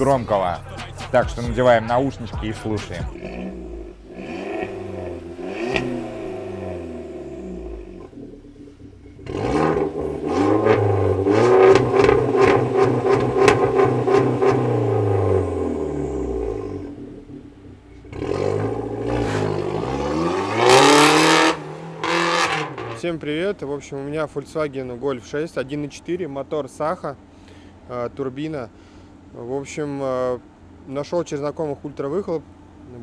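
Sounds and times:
car engine revving: 0.0s - 23.7s.

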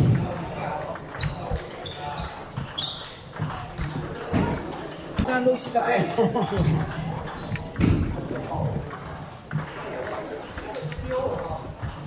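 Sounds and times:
ping pong ball clicking off paddles: 0.0s - 5.8s, 6.4s - 12.0s.

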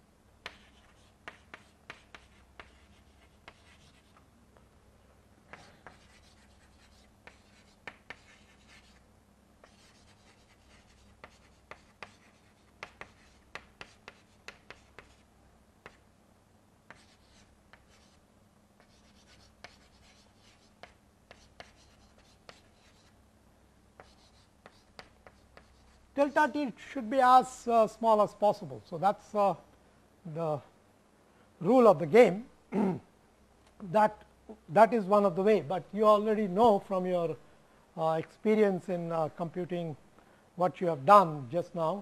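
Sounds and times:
chalk writing on blackboard: 0.4s - 4.2s, 5.5s - 9.0s, 9.6s - 16.0s, 16.9s - 18.2s, 18.8s - 23.2s, 24.0s - 26.0s.

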